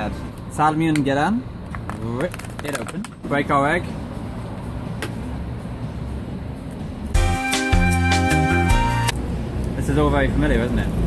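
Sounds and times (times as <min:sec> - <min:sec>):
street traffic noise: 0:00.0 - 0:11.0
music with held chords and bass: 0:07.1 - 0:09.2.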